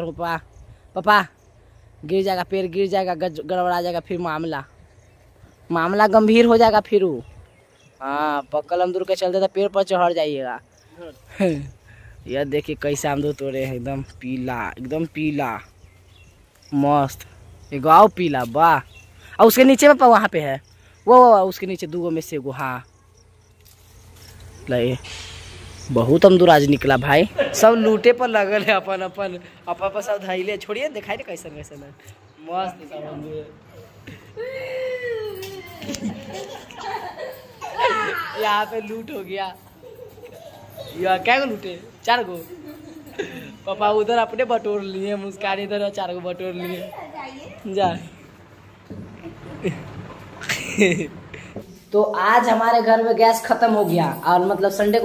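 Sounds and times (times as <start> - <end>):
family members speaking: 0.0 - 23.4, 24.4 - 55.0
people talking and calling out: 0.0 - 55.0
drawn-out exclamation: 31.9 - 44.4
child's voice: 46.5 - 47.7.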